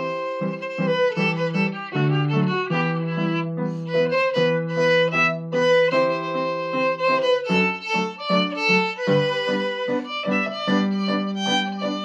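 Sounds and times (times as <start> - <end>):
solo fiddle playing a reel: 0.0 - 12.0.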